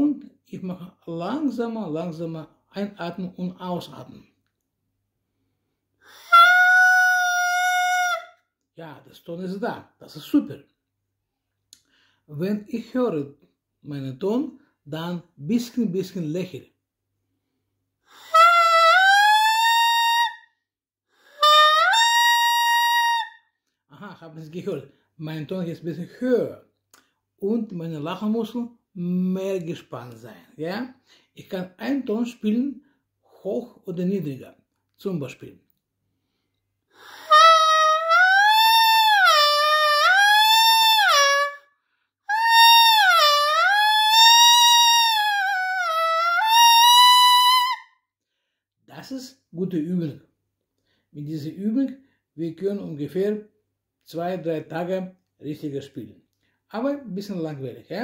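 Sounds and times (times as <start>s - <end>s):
person breathing: 11.8s - 12.3s, 31.0s - 31.4s
saxophone mouthpiece tones rising: 18.3s - 20.3s, 21.4s - 23.3s, 37.3s - 41.6s, 42.3s - 47.8s.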